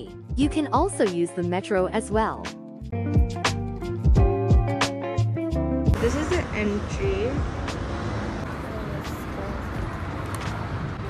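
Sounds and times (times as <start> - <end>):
faint background music: 0.0 - 2.6, 5.9 - 11.0
city street traffic rumble: 5.9 - 11.0.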